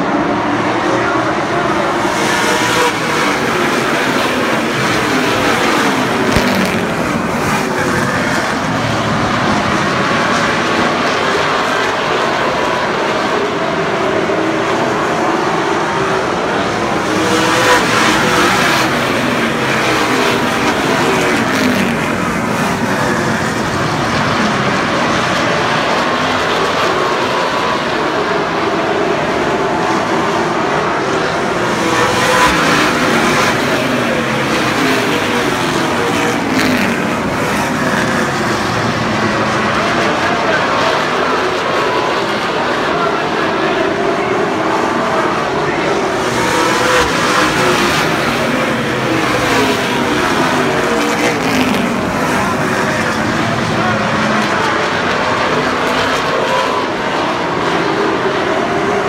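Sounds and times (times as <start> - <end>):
race car engines in a pack: 0.0 - 59.0.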